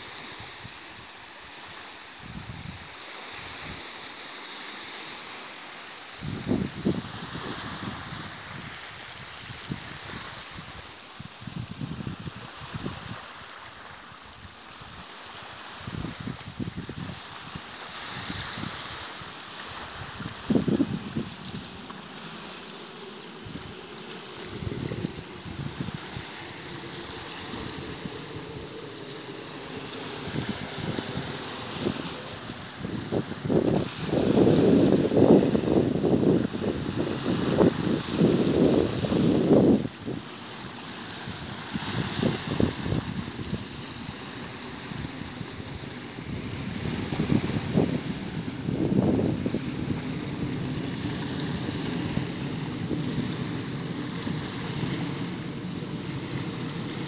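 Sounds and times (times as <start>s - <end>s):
small waves on pebble beach: 0.0s - 57.0s
wind buffeting microphone: 2.2s - 4.0s, 6.1s - 57.0s.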